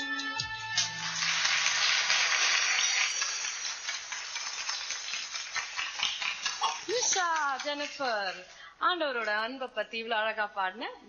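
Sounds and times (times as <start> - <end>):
audience applauding: 0.8 - 8.0.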